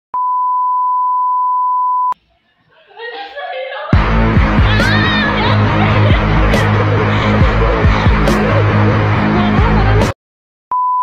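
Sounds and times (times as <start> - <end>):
steady test tone beep: 0.2 - 2.2, 10.7 - 11.0.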